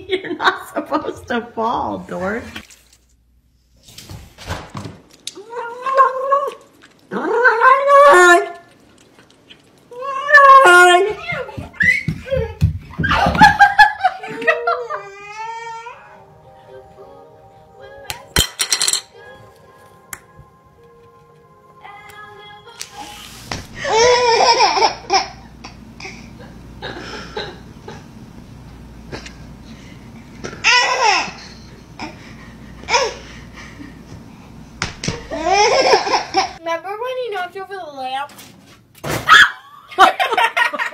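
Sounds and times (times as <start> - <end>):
excited voices and squeals: 5.4 - 8.6
held musical notes: 15.9 - 23.3
baby laughing loudly: 23.8 - 26.2, 35.2 - 36.6.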